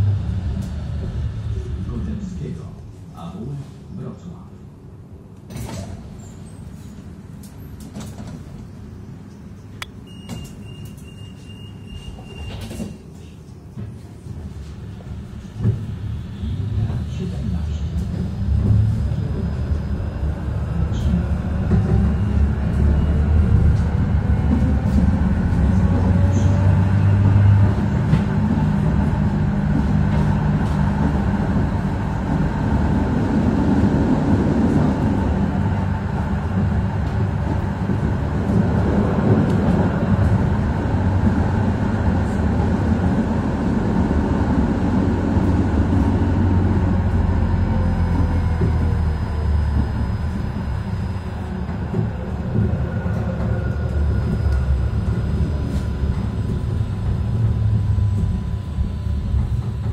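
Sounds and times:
tram wheels rumbling on rail: 0.0s - 59.9s.

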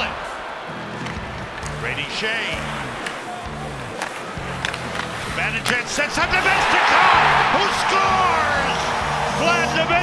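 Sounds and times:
crowd noise: 0.0s - 10.0s
low music-like tones: 0.0s - 10.0s
hockey sticks clicking on puck: 0.9s - 7.4s.

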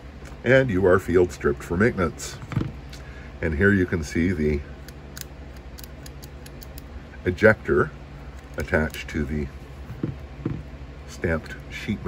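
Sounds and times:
small metal clicks: 4.8s - 6.9s.

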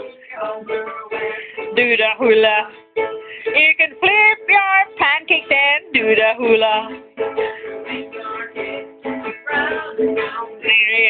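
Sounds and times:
person singing jingle: 0.0s - 2.8s, 3.4s - 11.0s
acoustic string instrument strumming: 0.0s - 11.0s.

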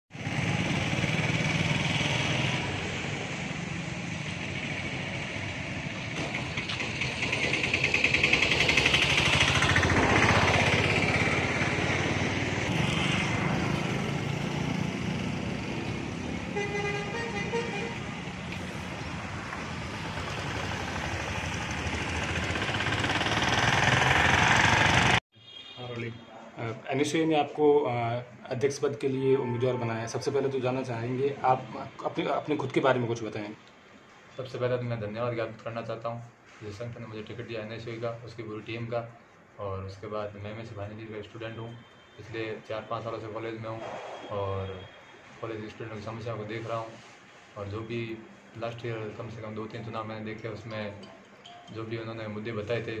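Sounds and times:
vehicles and motorbikes passing: 0.1s - 25.2s
vehicle horn: 16.5s - 18.1s, 25.3s - 26.3s.

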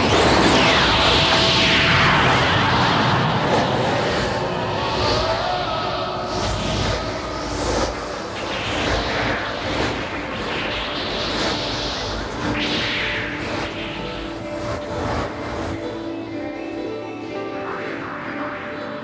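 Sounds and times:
dense rushing noise: 0.0s - 16.8s
whooshes: 0.0s - 17.0s.

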